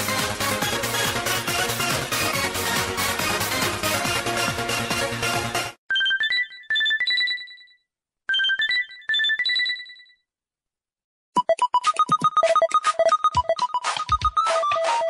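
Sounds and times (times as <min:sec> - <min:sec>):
musical ringtone: 0:05.9 - 0:10.2, 0:11.4 - 0:15.0
rapid staccato beeps: 0:11.4 - 0:15.0.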